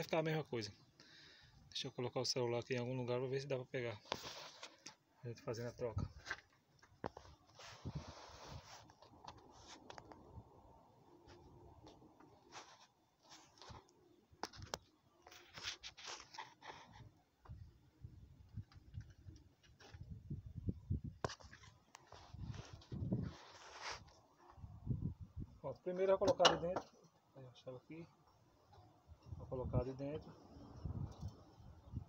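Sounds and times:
rustling: 0:21.4 - 0:24.6.

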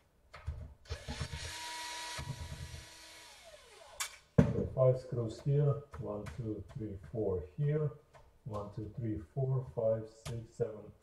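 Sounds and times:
electric screwdriver whirring: 0:00.9 - 0:04.2.

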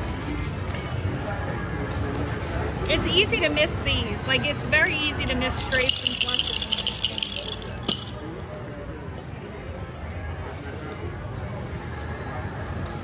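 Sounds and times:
murmur of casino crowd: 0:00.0 - 0:13.0
dice rattling in a shaker: 0:05.2 - 0:08.5.

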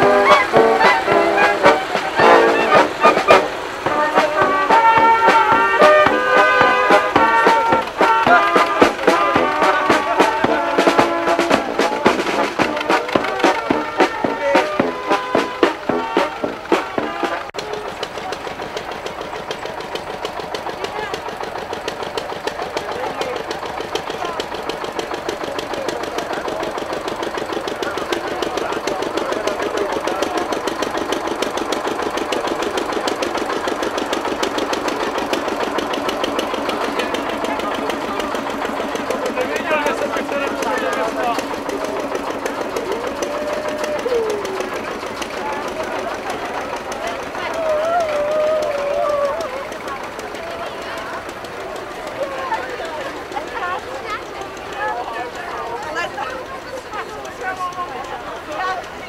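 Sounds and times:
crowd talking: 0:00.0 - 0:59.0
tractor engine knocking: 0:00.0 - 0:59.0.

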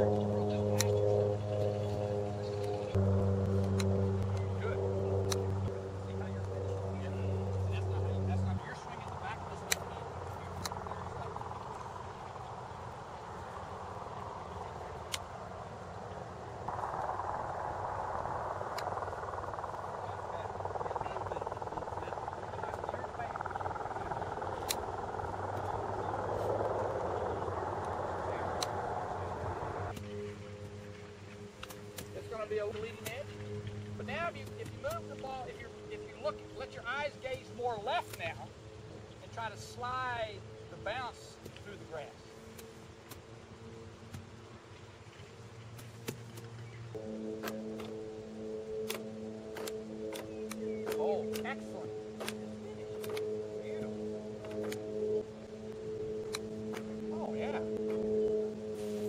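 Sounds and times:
rushing background noise: 0:00.0 - 0:59.0
steady low hum: 0:00.0 - 0:59.0.

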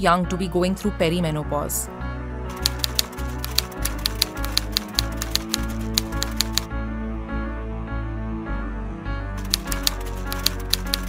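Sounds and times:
typewriter keys clacking: 0:02.5 - 0:06.7, 0:09.4 - 0:11.0.

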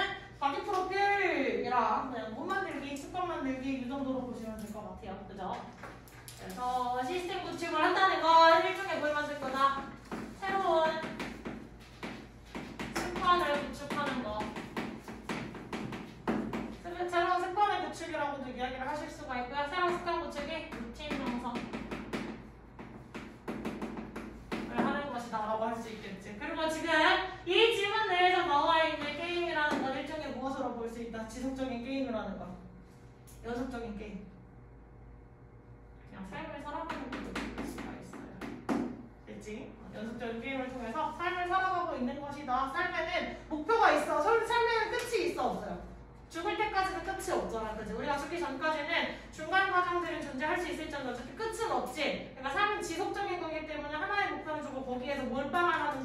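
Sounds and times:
woman speaking: 0:00.0 - 0:11.5, 0:12.8 - 0:15.0, 0:16.6 - 0:21.9, 0:24.6 - 0:32.7, 0:33.3 - 0:34.4, 0:36.0 - 0:56.0
chalk tapping on chalkboard: 0:09.4 - 0:16.8, 0:20.7 - 0:24.9, 0:36.9 - 0:38.9.

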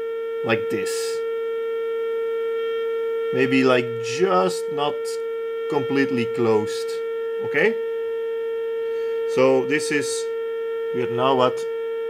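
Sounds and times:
steady test tone: 0:00.0 - 0:12.0.

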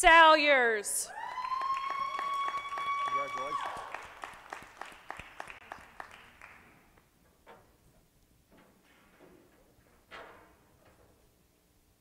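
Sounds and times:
people clapping: 0:01.2 - 0:07.0.

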